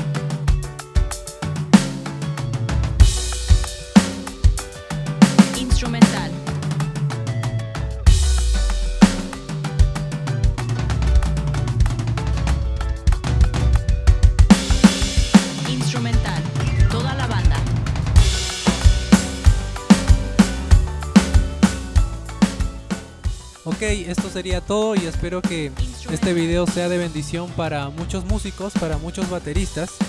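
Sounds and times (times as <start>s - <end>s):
band backing track: 0.0s - 30.0s
electronic drum kit playing: 0.0s - 30.0s.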